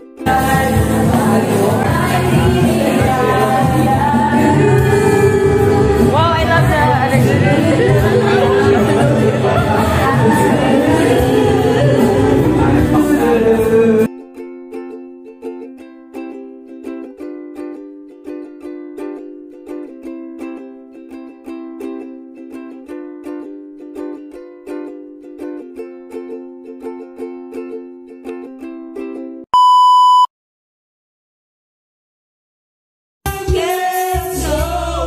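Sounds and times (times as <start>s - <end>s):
plucked-string music with beat: 0.0s - 29.4s
karaoke singing over backing track: 0.3s - 14.1s, 33.3s - 35.0s.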